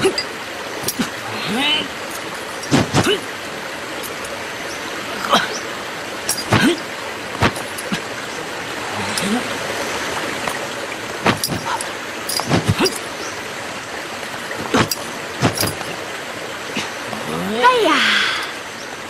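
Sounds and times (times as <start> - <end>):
waterfall rushing: 0.0 - 19.0
voiced grunt: 2.7 - 3.3.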